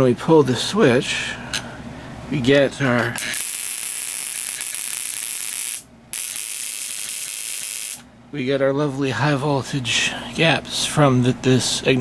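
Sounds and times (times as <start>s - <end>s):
ignition coil sparks buzzing: 3.2s - 8.1s.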